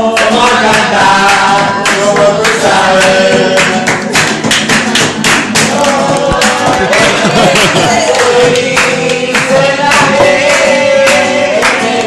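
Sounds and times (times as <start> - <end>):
acoustic guitar strummed: 0.0 - 12.0
people singing: 0.0 - 12.0
rhythmic hand clapping: 0.0 - 12.0.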